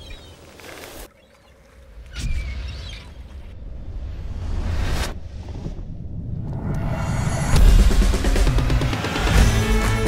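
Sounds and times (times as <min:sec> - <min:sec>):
wind: 0:00.0 - 0:09.3
high wavering bird calls: 0:01.1 - 0:03.4.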